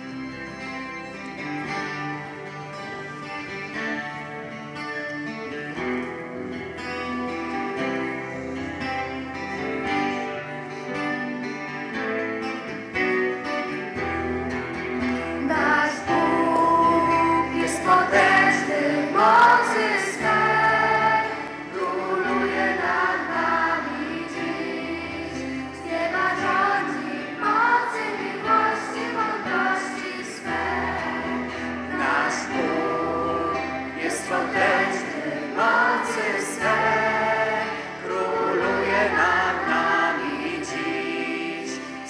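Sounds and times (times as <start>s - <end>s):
choir singing a hymn: 13.6s - 42.0s.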